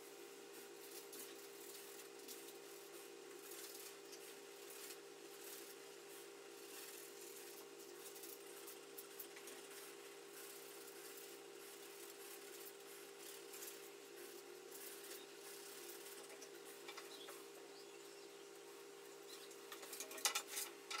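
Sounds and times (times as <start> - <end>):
grooming tool snipping fur: 0.6 - 17.4.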